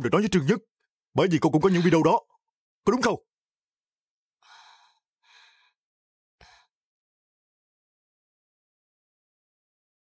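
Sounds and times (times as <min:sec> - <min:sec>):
woman breathing faintly: 0:04.4 - 0:05.8.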